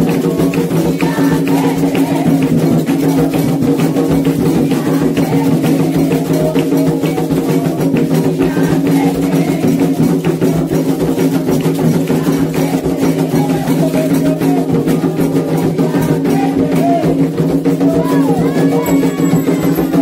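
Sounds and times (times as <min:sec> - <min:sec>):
group singing a chant: 0:00.0 - 0:20.0
hand drums playing fast rhythm: 0:00.0 - 0:20.0.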